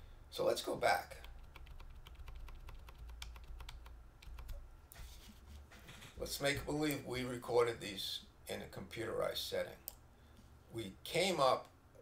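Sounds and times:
faint low hum: 0.0 - 12.0
computer keyboard clicks: 1.2 - 4.6.

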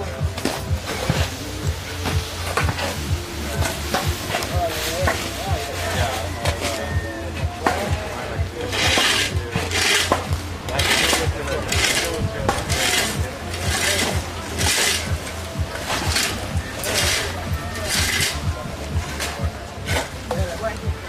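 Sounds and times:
shovels scraping dry soil: 0.4 - 7.0, 8.6 - 20.5.

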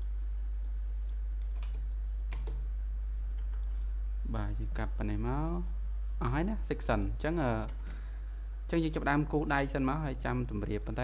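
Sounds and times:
keyboard and mouse clicks: 0.0 - 3.9
steady low hum: 0.0 - 11.0
man talking: 4.2 - 7.8, 8.7 - 11.0.

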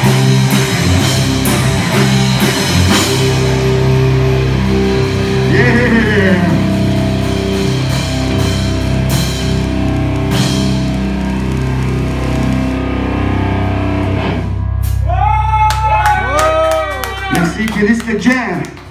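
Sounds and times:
live rock band playing: 0.0 - 18.9
clapping and cheering: 15.1 - 18.9.

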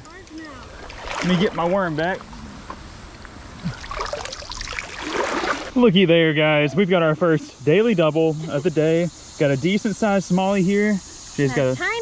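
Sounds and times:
creek water rushing around leg: 0.3 - 5.8.

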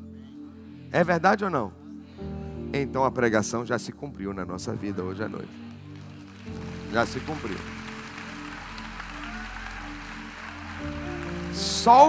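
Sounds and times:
keyboard pad chords: 0.0 - 12.0.

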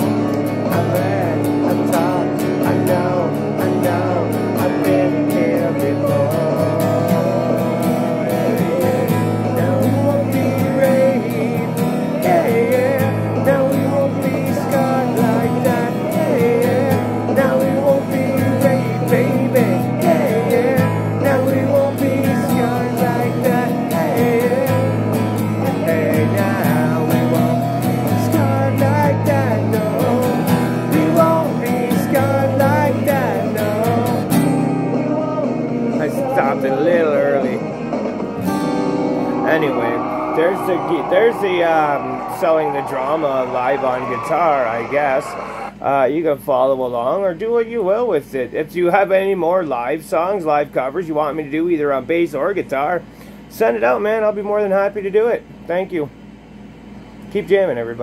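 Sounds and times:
person singing: 0.0 - 37.7, 39.0 - 45.8
recorded rock song: 0.0 - 45.8
acoustic guitar strumming: 0.0 - 45.9.

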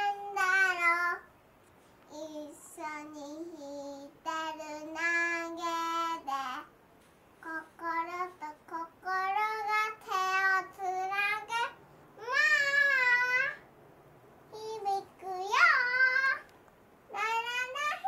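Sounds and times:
girl singing unaccompanied: 0.0 - 1.4, 2.1 - 6.8, 7.4 - 13.7, 14.5 - 18.0.

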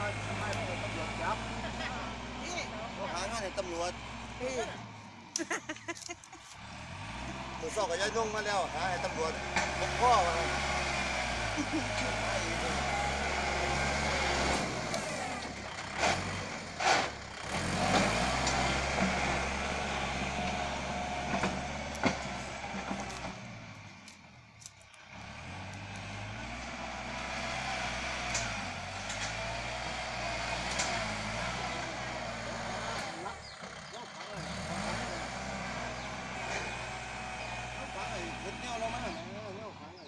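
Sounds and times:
tractor diesel engine under load: 0.0 - 40.0
blade pushing loose soil: 5.4 - 40.0.

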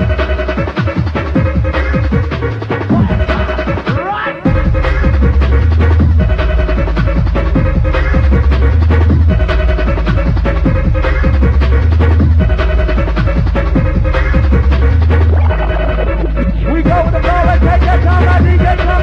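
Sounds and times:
deep bass line: 0.0 - 19.0
fast drums: 0.0 - 19.0
rave music: 0.0 - 19.0.

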